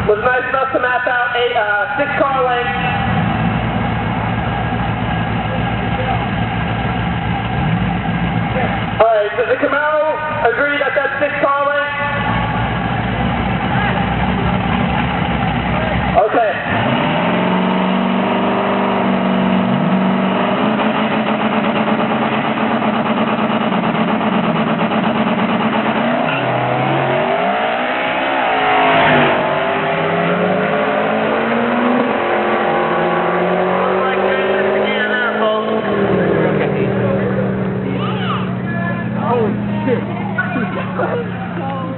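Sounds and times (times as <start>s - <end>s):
cars accelerating away: 0.0s - 41.9s
race car engines revving: 0.0s - 41.9s
voices: 33.4s - 41.9s.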